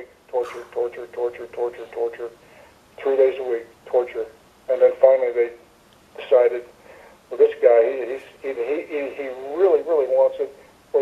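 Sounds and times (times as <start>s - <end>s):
person talking over telephone: 0.0s - 2.4s, 3.0s - 5.6s, 6.2s - 6.7s, 7.3s - 11.0s.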